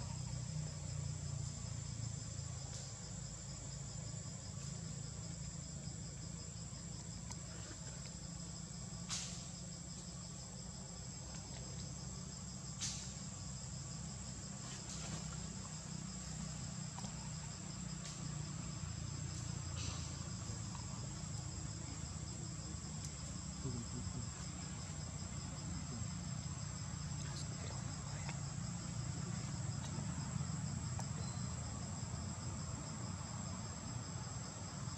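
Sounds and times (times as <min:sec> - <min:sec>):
insect chorus whine: 0:00.0 - 0:34.9
pulsing insect trill: 0:00.0 - 0:34.9.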